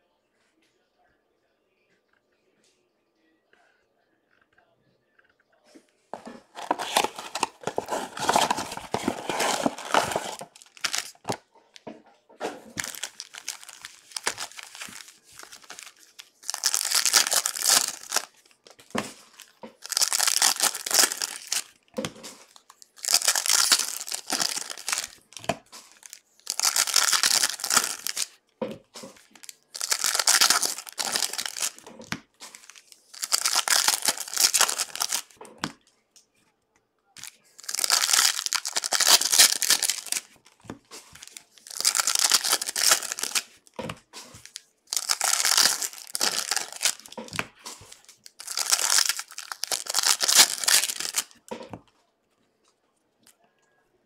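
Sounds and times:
foil wrappers tearing and crinkling: 0:06.4 - 0:11.4, 0:12.8 - 0:28.4, 0:29.2 - 0:31.9, 0:32.5 - 0:35.4, 0:37.2 - 0:40.4, 0:41.0 - 0:43.6, 0:44.4 - 0:51.4.

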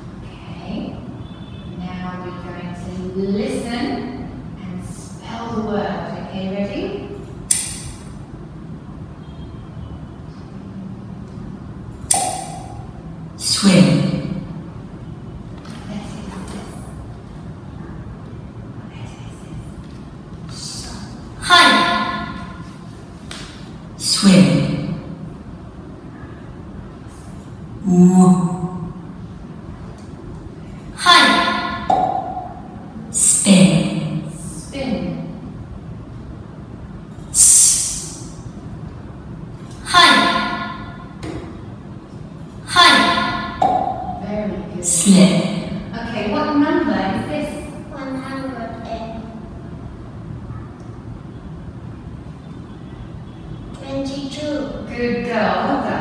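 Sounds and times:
low room rumble: 0:00.0 - 0:56.0.

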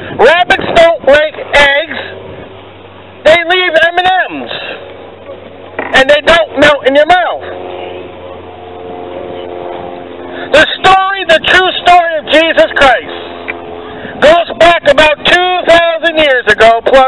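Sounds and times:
engine hum: 0:00.0 - 0:17.0
man preaching loudly: 0:00.2 - 0:02.2, 0:03.2 - 0:04.7, 0:05.9 - 0:07.6, 0:10.5 - 0:13.1, 0:14.2 - 0:17.0.

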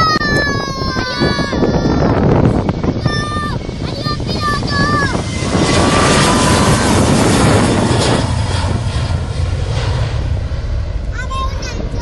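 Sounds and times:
faint steady jet whine: 0:00.0 - 0:12.0
jet engines roaring at takeoff: 0:00.0 - 0:12.0.

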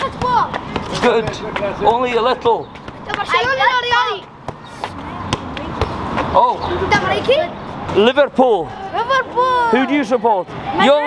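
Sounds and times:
football thudding on paving stones: 0:00.0 - 0:06.4.

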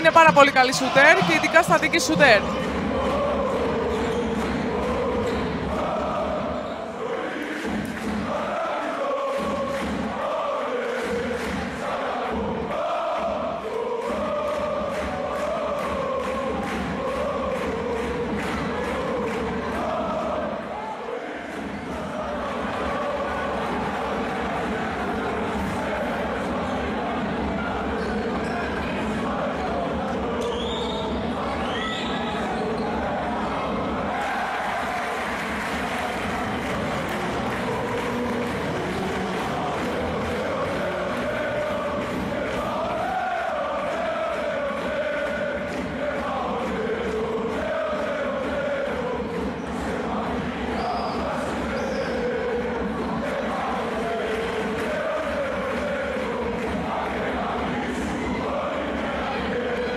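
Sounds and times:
crowd chanting and singing: 0:00.0 - 0:59.9.

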